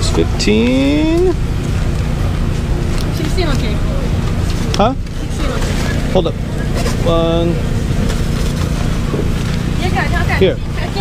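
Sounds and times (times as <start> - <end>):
low rumble and hum: 0.0 - 11.0.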